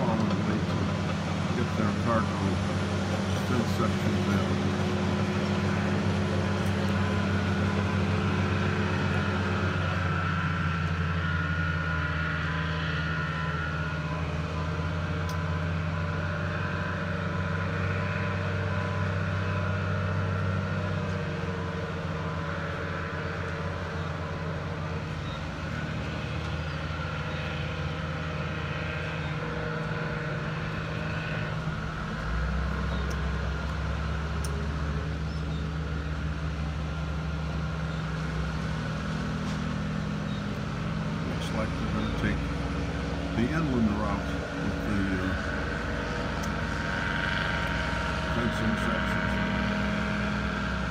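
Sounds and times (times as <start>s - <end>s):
heavy machinery engines droning: 0.0s - 50.9s.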